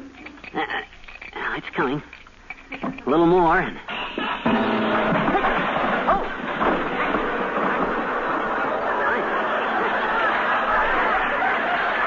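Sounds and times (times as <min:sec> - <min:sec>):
studio audience laughing: 0:07.5 - 0:12.0.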